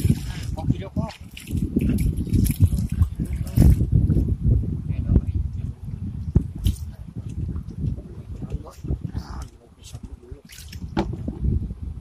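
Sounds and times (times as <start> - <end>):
hands splashing in shallow water: 0.0 - 3.8, 10.4 - 11.0
low rumble on microphone: 0.0 - 12.0.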